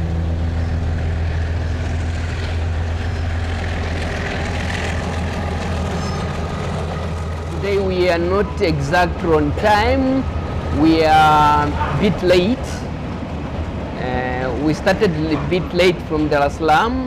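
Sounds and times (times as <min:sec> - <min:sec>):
locomotive engine drone: 0:00.0 - 0:17.0
train wheels rumbling on rails: 0:00.0 - 0:17.0
man's voice: 0:07.5 - 0:12.9, 0:14.0 - 0:17.0.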